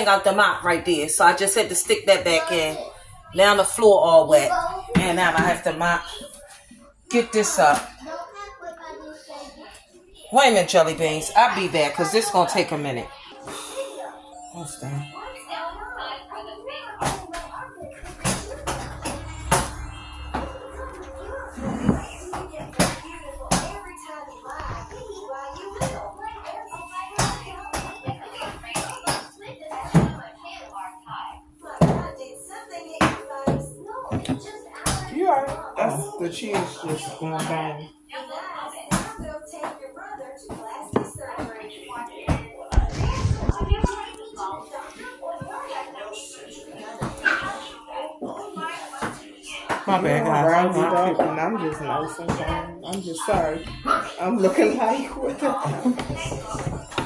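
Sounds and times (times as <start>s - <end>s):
faint background music: 0.0s - 57.0s
indistinct talking: 0.0s - 57.0s
steady low hum: 17.8s - 23.8s.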